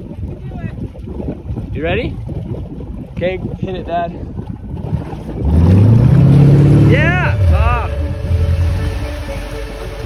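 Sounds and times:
motorboat engine throttling up: 4.4 - 10.0.

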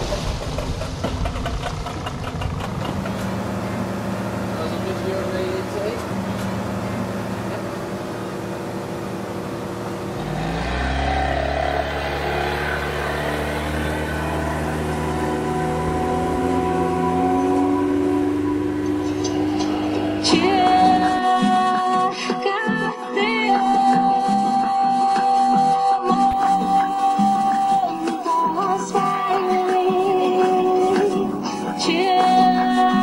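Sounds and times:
outboard motor running: 0.0 - 21.8.

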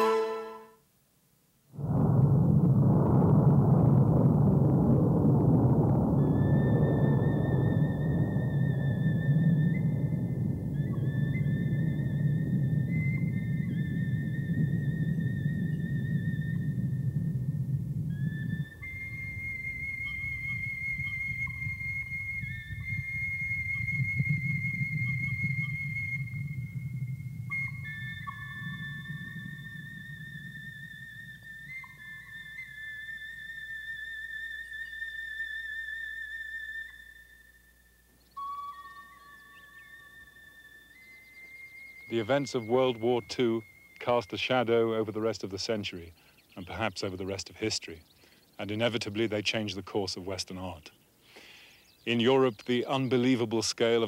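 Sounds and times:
deep rumble: 1.7 - 32.9
high wavering whistle-like tones: 1.8 - 51.0.

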